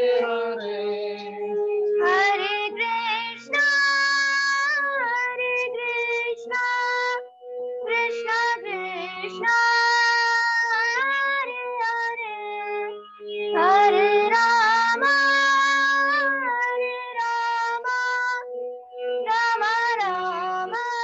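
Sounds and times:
electronic keyboard notes: 0.0s - 21.0s
girl singing slow melody: 0.0s - 21.0s.

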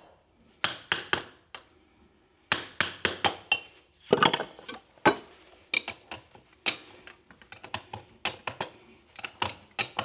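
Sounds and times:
hand tool clicking on hoof nails: 7.4s - 10.0s.

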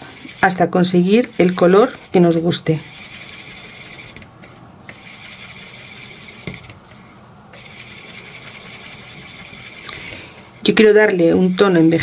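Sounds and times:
stick scraping paint on plastic: 0.0s - 10.0s.

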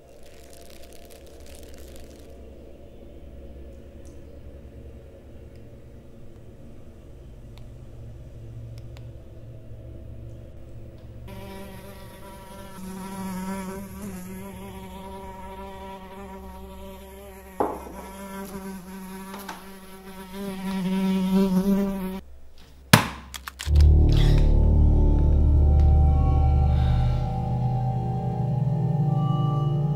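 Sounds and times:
housefly buzzing: 11.3s - 22.2s
sharp smack: 22.9s - 23.3s.

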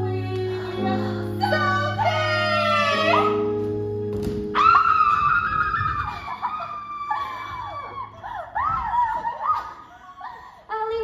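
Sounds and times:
girls shrieking: 4.6s - 10.5s.

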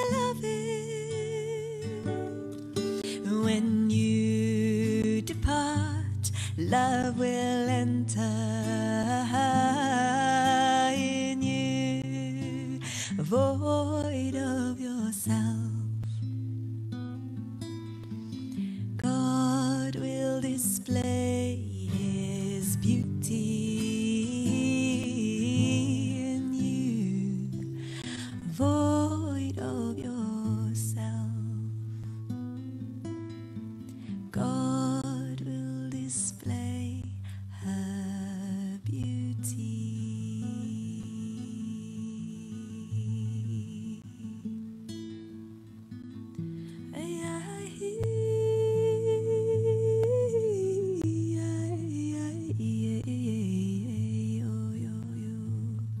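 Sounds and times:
woman singing: 0.0s - 16.4s, 18.5s - 32.4s, 33.8s - 44.8s, 46.8s - 56.0s
acoustic guitar: 0.0s - 56.0s.

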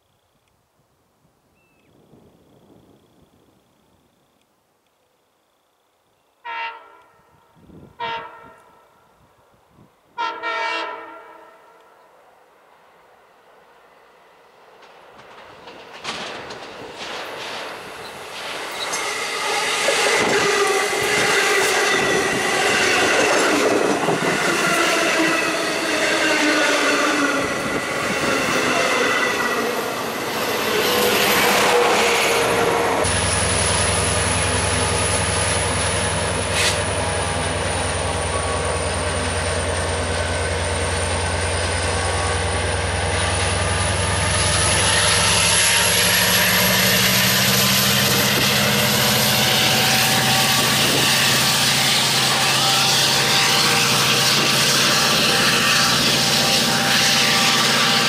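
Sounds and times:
train horn blasts: 6.4s - 9.3s, 10.2s - 12.2s, 19.4s - 29.8s, 30.5s - 33.2s, 48.9s - 58.0s
train passing rush: 10.2s - 58.0s
locomotive hum and whine: 11.5s - 58.0s
train wheels clacking: 14.8s - 26.5s, 27.3s - 58.0s.

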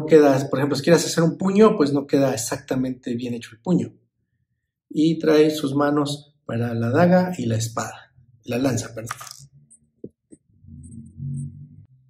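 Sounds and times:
low hum: 9.5s - 12.0s.

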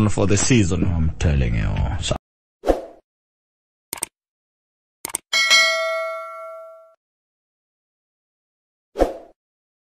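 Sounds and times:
mouse clicks: 3.9s - 4.1s, 5.0s - 5.2s
notification bell ding: 5.4s - 7.0s.

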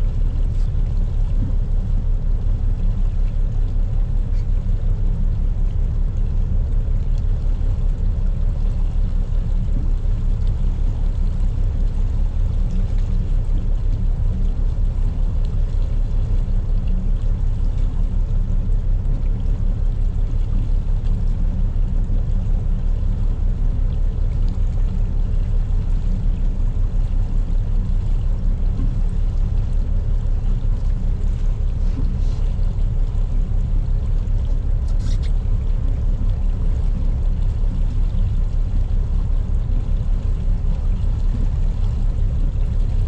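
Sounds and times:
boat diesel engine running: 0.0s - 43.0s.

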